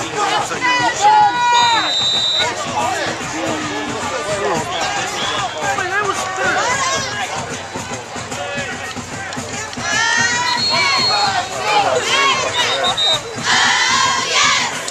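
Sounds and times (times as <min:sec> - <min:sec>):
crowd shouting and cheering: 0:00.0 - 0:14.9.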